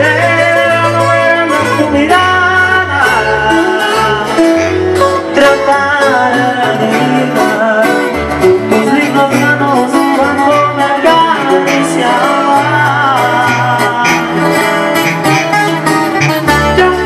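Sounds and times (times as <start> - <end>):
bass notes: 0.0 - 17.0
plucked guitars: 0.0 - 17.0.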